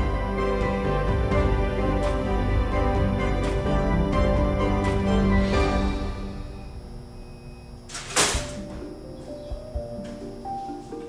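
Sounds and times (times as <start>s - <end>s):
trap door snapping shut: 7.9s - 8.7s.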